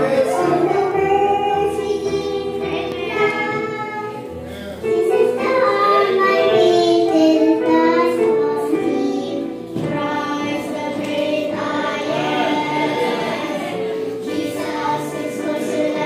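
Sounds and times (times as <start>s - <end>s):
girls singing into microphones: 0.0s - 16.0s.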